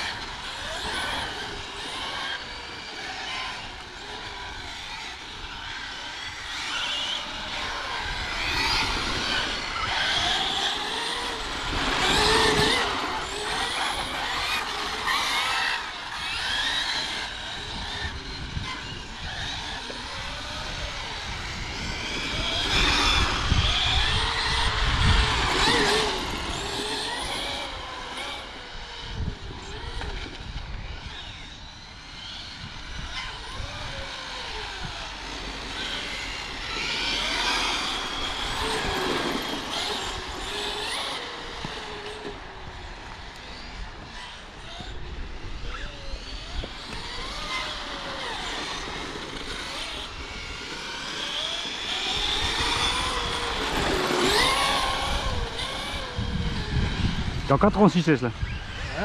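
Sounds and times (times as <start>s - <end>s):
electric rc car motors whining: 0.0s - 59.0s.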